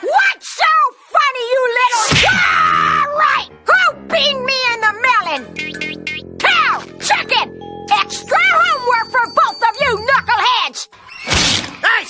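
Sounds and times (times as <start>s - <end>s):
background music: 2.0s - 11.1s.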